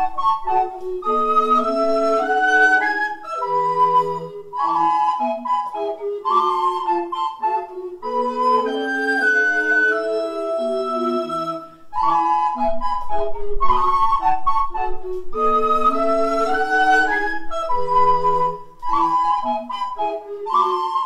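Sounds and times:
recorder ensemble playing: 0.0 - 21.0.

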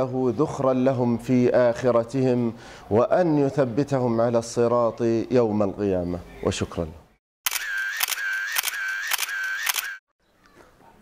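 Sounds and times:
camera shutter click and film winder whir: 7.5 - 10.0.

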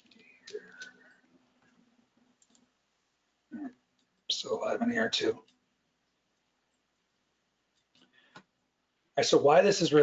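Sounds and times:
computer clicks: 2.4 - 2.7.

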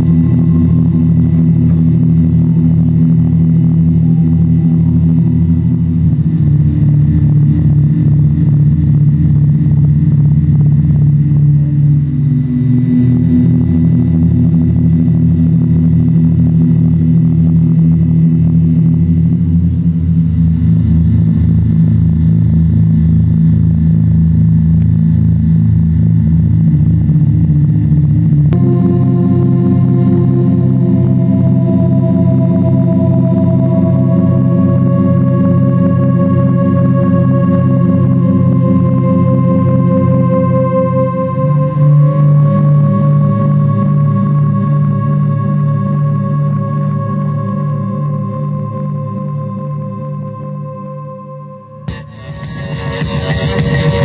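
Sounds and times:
low electronic drone with pulsing throb: 0.0 - 54.0.

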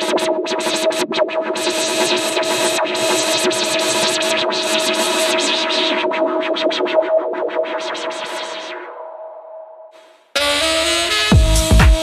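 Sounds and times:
electronic techno track: 10.4 - 12.0.

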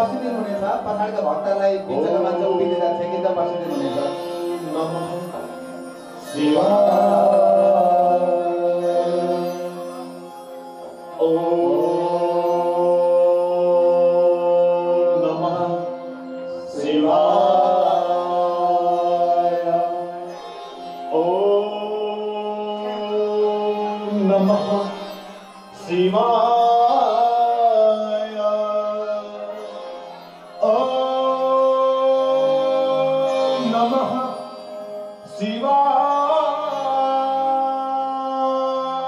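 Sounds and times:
mantra chant: 6.2 - 10.2, 11.1 - 15.9, 16.6 - 29.9.

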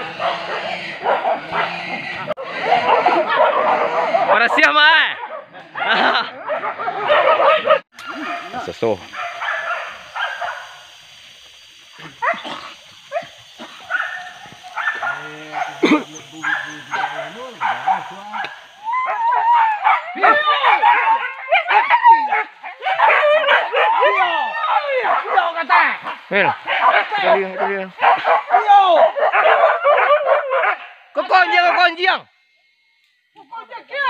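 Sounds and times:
dogs yelping and barking: 0.0 - 32.0.

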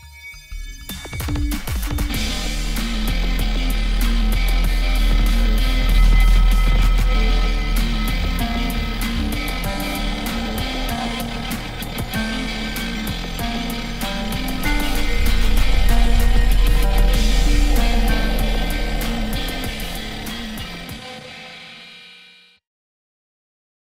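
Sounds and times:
music with deep bass and percussion: 0.0 - 21.0.

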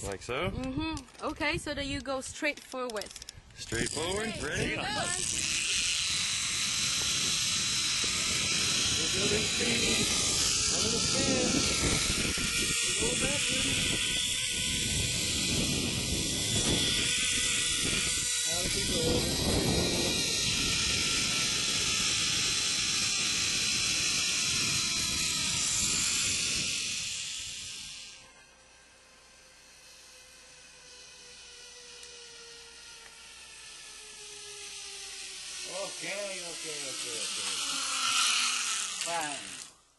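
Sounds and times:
zip-line trolley on cable: 0.0 - 39.9
wind rushing over microphone: 3.4 - 28.2
falling whine: 3.6 - 39.9.

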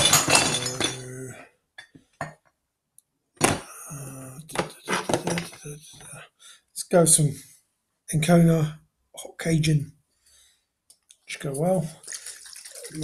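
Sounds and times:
man mumbling: 0.3 - 1.4, 3.6 - 6.2.

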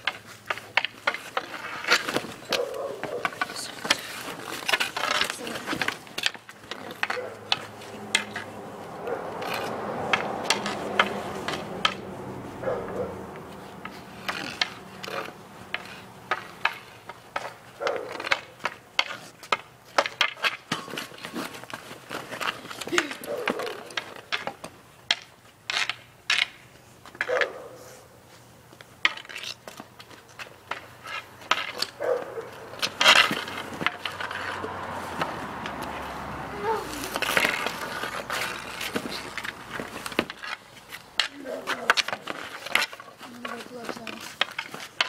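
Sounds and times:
hockey stick clacks on pavement: 0.0 - 27.7, 28.7 - 45.0
hockey stick scraping pavement: 0.0 - 45.0.

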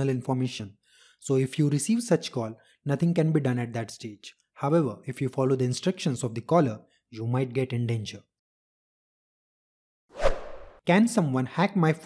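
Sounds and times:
whoosh sound effect: 10.2 - 10.8.

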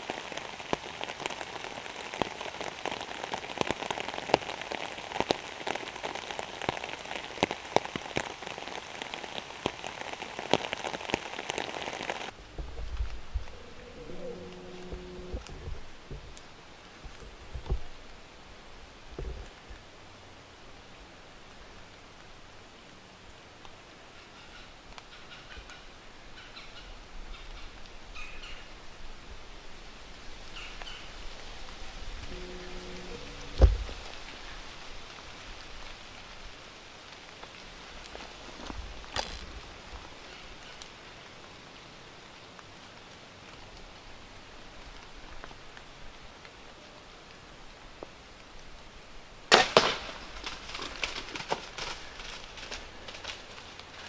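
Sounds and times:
faint rustling: 12.3 - 18.2
bow release crack: 39.1 - 39.5
deer running through dry leaves: 49.7 - 54.0.

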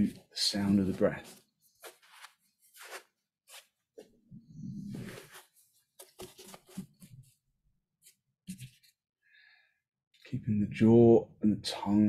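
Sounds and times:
clothing rustling: 0.6 - 7.4
man breathing softly: 9.2 - 9.8.

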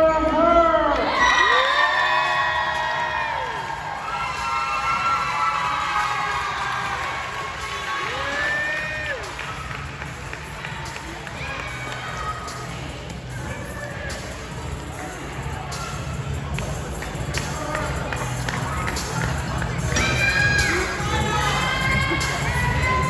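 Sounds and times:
crowd cheering and clapping: 0.9 - 12.9, 15.7 - 23.0.

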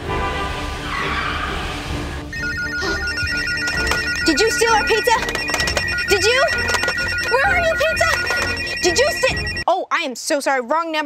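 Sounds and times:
trailer music: 0.0 - 9.6
telephone ringing trill: 2.3 - 9.6.

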